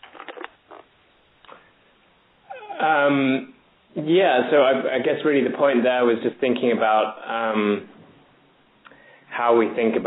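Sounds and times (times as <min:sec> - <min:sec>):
man saying um: 0:02.5 - 0:05.0.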